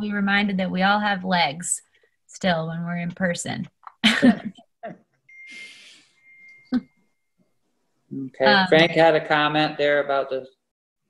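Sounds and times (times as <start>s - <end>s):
person laughing: 4.0s - 5.8s
thin steady high tone: 5.3s - 9.4s
soft breathy hiss: 5.4s - 6.2s.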